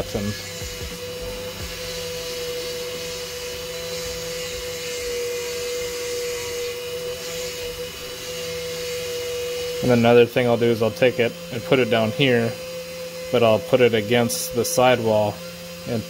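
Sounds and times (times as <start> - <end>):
rotary tool motor whine: 0.0 - 16.0.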